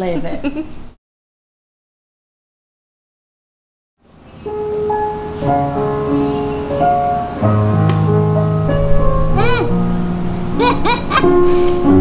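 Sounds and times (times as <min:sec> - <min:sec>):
piano music: 0:04.1 - 0:12.0.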